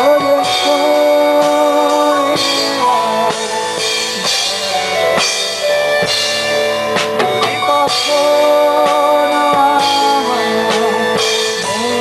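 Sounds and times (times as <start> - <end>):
drum kit beat with cymbals: 0.0 - 12.0.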